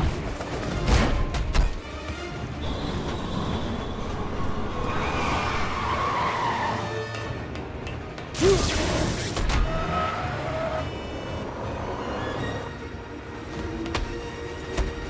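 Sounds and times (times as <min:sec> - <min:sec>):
film score music: 0:00.0 - 0:15.0.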